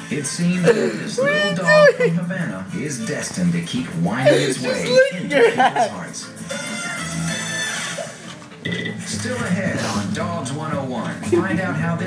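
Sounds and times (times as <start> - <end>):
guitar music from television: 0.0 - 12.0.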